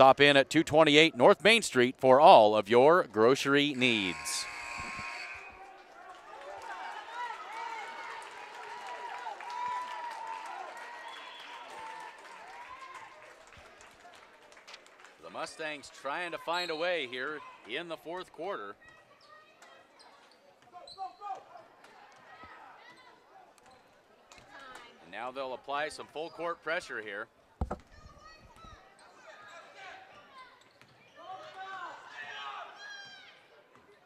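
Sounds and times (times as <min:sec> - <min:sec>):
crowd chatter: 0:03.6 - 0:07.4.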